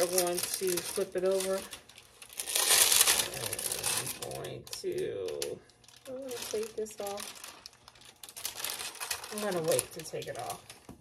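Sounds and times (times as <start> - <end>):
paper crinkling and rustling: 0.0 - 11.0.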